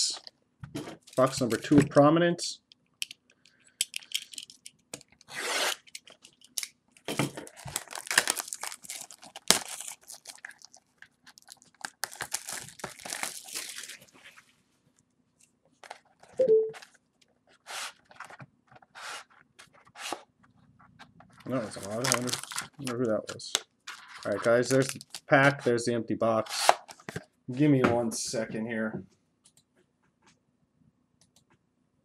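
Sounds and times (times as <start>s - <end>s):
plastic wrap crinkling and tearing: 5.6s - 14.4s, 21.4s - 23.1s, 23.9s - 25.5s.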